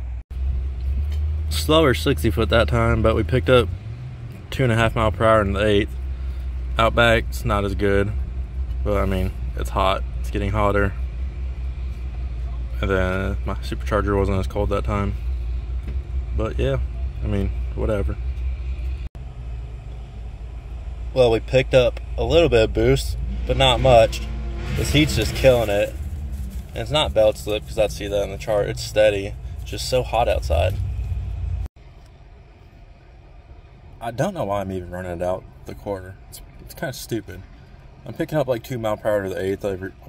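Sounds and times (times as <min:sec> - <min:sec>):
car engine idling: 0:00.0 - 0:40.0.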